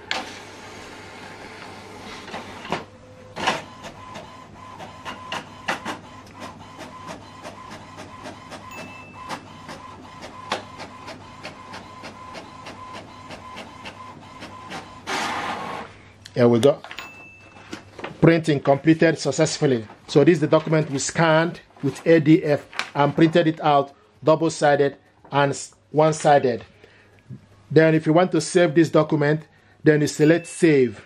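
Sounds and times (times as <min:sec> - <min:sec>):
printer paper feed whirr: 0:00.0 - 0:16.0.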